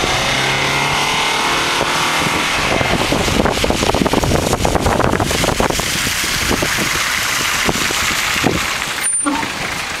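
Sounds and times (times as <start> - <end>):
tyres hissing on wet asphalt: 0.0 - 10.0
van engine passing: 0.0 - 10.0.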